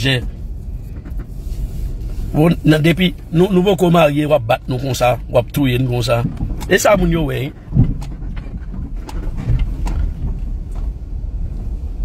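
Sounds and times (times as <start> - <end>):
car rumble inside cabin: 0.0 - 12.0.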